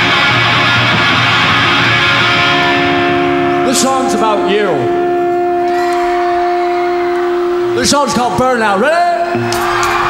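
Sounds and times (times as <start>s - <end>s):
electric guitar feedback tone: 0.0s - 10.0s.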